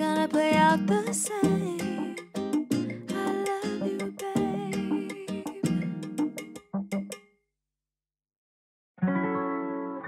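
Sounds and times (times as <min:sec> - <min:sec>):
background music with percussive hits: 0:01.5 - 0:07.3.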